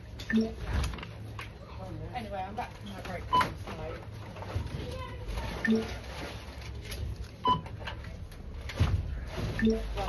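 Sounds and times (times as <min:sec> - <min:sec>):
steady store hum: 0:00.0 - 0:10.0
barcode scanner beeps: 0:00.3 - 0:00.6, 0:07.4 - 0:07.7.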